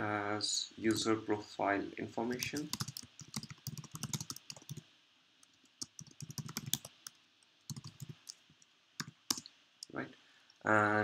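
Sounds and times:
typing on computer keyboard: 0:02.4 - 0:04.8, 0:05.8 - 0:08.4, 0:09.0 - 0:09.4.

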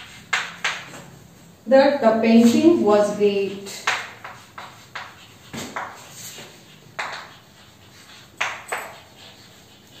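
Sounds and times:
chalk tapping on blackboard: 0:00.0 - 0:01.2, 0:03.4 - 0:10.0.

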